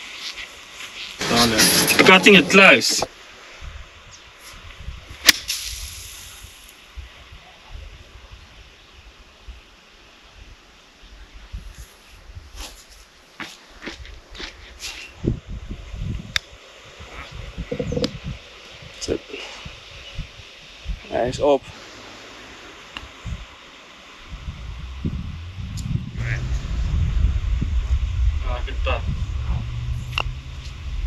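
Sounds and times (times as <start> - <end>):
low rumbling: 17.1 - 18.4, 24.2 - 31.0.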